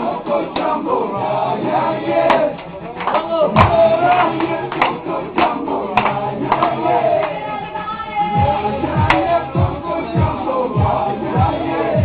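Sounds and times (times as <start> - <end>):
men's voices and shouts: 0.0 - 12.0
party dance music: 0.0 - 12.0
sharp claps: 2.3 - 7.4.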